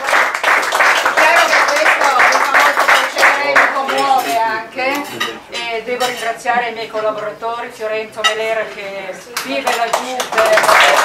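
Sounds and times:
guests applauding: 0:00.0 - 0:04.2, 0:09.4 - 0:11.0
woman speaking: 0:01.2 - 0:11.0.

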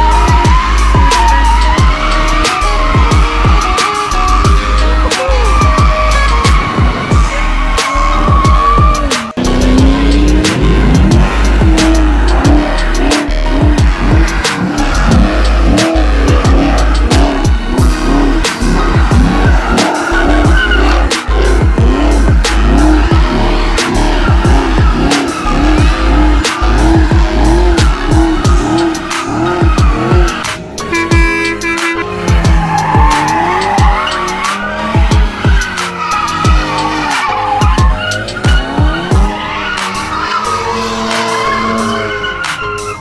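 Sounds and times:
music with heavy bass beat: 0:00.0 - 0:43.0
tires squealing and skidding: 0:00.0 - 0:43.0.

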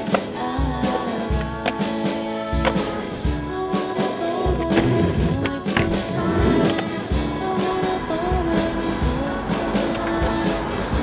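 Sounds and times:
skateboard clacks: 0:00.0 - 0:03.2, 0:04.0 - 0:11.0
music soundtrack: 0:00.0 - 0:11.0
skateboard wheels rolling on concrete: 0:00.0 - 0:11.0.

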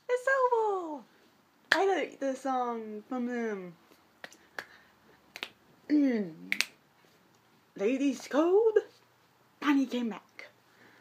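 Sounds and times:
finger snaps: 0:04.2 - 0:05.6, 0:06.4 - 0:06.8.

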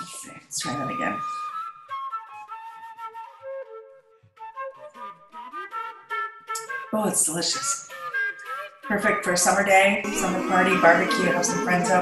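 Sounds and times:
flute melody: 0:00.7 - 0:09.1.

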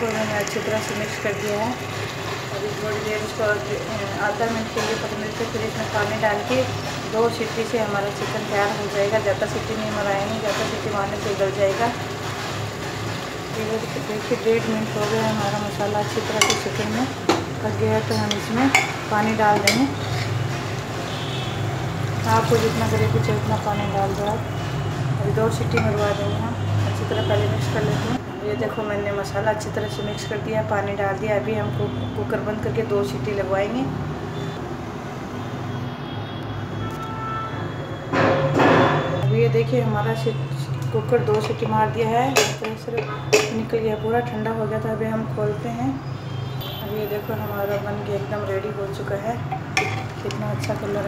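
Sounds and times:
woman speaking: 0:00.0 - 0:01.8, 0:02.5 - 0:12.0, 0:13.5 - 0:20.0, 0:22.2 - 0:24.6, 0:25.2 - 0:34.0, 0:39.2 - 0:46.0, 0:46.8 - 0:49.5, 0:50.1 - 0:51.0
chicken sizzling in a pot: 0:00.0 - 0:25.1.

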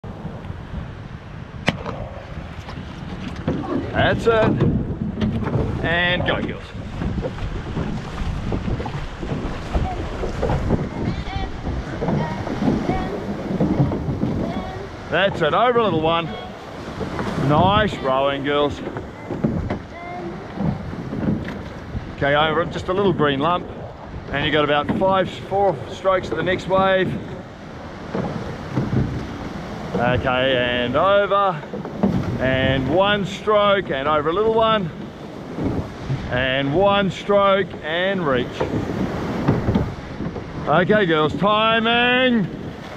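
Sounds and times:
surf washing around boat: 0:00.0 - 0:42.9
water splashing along hull: 0:00.0 - 0:42.9
wind buffeting microphone: 0:00.0 - 0:42.9
sharp knock: 0:01.6 - 0:02.0.

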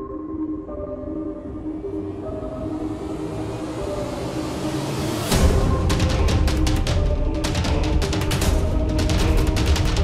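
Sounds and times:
sustained synth chords: 0:00.0 - 0:10.0.

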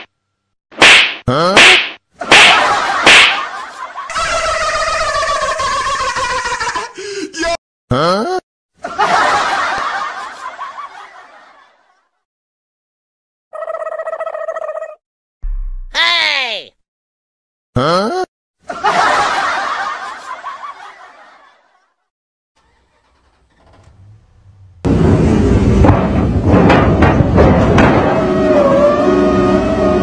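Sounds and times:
comedy slap hits: 0:00.8 - 0:03.6
falling pitch sound effect: 0:15.4 - 0:16.0.

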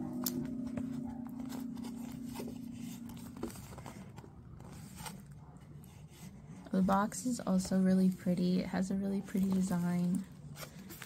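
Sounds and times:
cardboard box being handled: 0:00.6 - 0:07.8.

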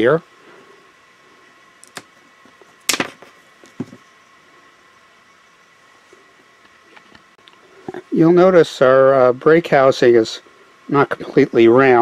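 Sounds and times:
cable cutters snapping through cable: 0:01.8 - 0:02.1.

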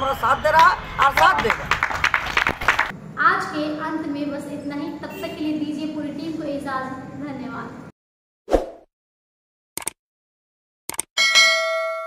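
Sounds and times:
notification bell ding: 0:11.2 - 0:12.0.

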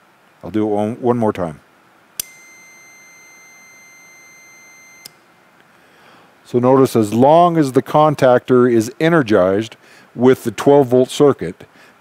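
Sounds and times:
multimeter continuity beep: 0:02.2 - 0:05.2.

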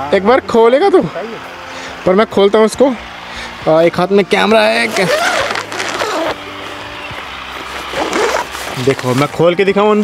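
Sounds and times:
tent fabric rustling: 0:04.6 - 0:10.0
tent zipper being pulled open: 0:04.7 - 0:06.4, 0:07.6 - 0:09.4.

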